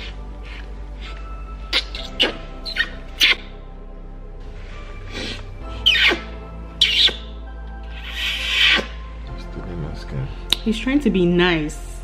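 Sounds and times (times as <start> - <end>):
background music: 0.0 - 12.0
squeaky kisses on a cheek: 1.7 - 3.4.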